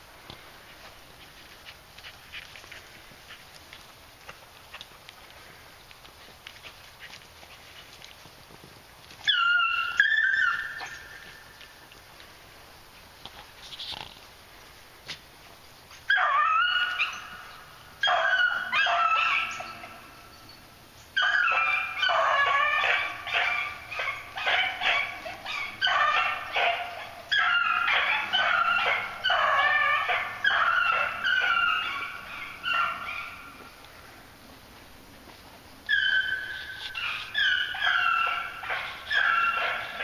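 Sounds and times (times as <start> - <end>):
hounds baying: 9.2 - 11.4, 16.1 - 20.2, 21.2 - 33.9, 35.8 - 40.0.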